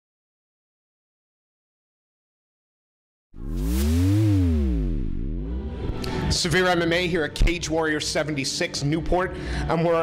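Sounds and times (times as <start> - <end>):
buzzy synth tone gliding: 3.4 - 6.1.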